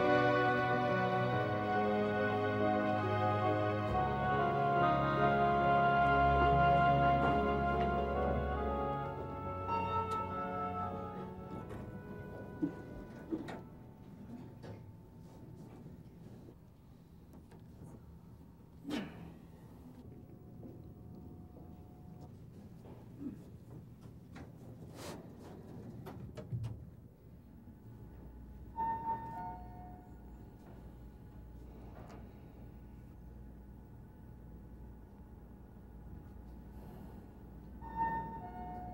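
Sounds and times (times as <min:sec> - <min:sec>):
low steady hum: 0:00.0 - 0:38.9.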